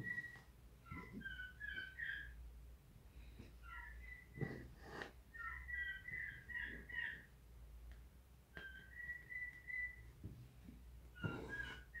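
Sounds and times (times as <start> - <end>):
faint high whistling: 0.0 - 2.4, 3.6 - 4.6, 8.5 - 10.3, 11.1 - 12.0.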